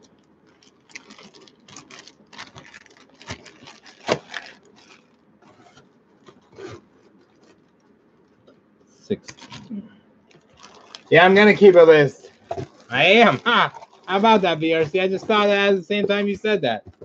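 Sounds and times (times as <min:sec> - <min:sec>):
plastic and foil packs crinkling: 0:00.0 - 0:08.4, 0:09.1 - 0:17.0.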